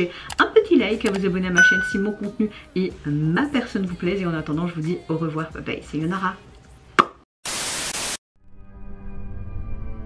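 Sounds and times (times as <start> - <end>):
static hiss burst: 7.4 - 8.2.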